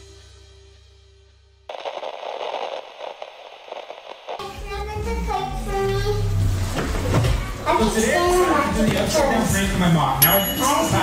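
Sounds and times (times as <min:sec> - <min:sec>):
crackling tv static: 0:01.7 - 0:05.7.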